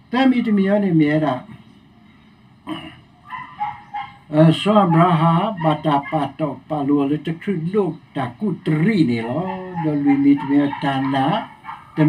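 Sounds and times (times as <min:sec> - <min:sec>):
animal crying: 0:02.6 - 0:07.2, 0:09.0 - 0:12.0
animal whining high-pitched: 0:03.2 - 0:06.4, 0:09.1 - 0:12.0.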